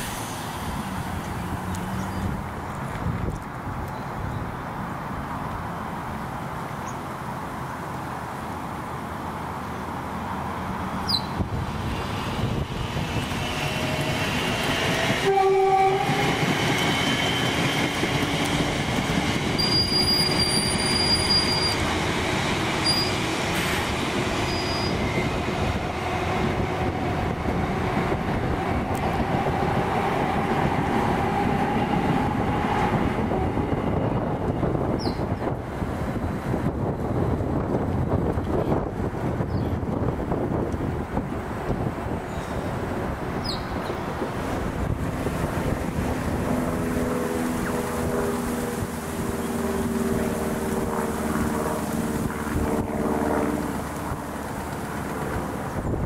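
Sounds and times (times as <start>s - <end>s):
bus pulling away: 0.0s - 2.7s, 16.4s - 26.2s.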